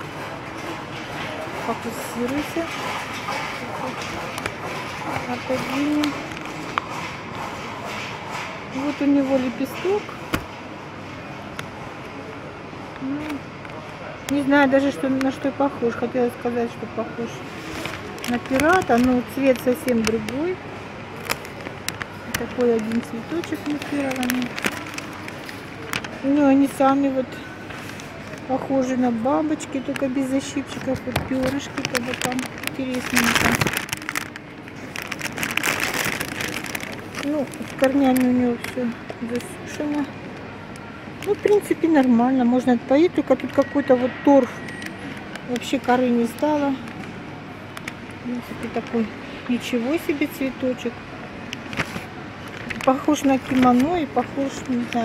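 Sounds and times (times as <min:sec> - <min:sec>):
steady background noise: 0:00.0 - 0:55.0
plastic sleeve crinkling: 0:17.5 - 0:26.8, 0:29.8 - 0:40.2, 0:51.4 - 0:55.0.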